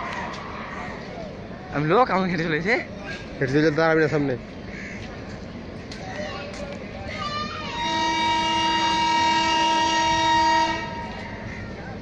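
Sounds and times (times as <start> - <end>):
train horn blast: 7.2 - 11.5.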